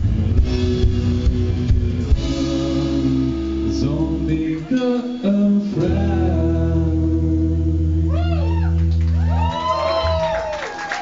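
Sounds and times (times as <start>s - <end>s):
rock band chord ringing: 0.0s - 8.3s
audience whooping and cheering: 8.1s - 11.0s.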